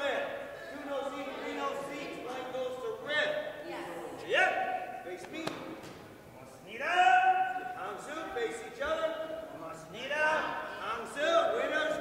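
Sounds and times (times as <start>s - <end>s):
sharp smack: 5.4s - 6.0s
martial arts yells echoing: 6.8s - 7.8s.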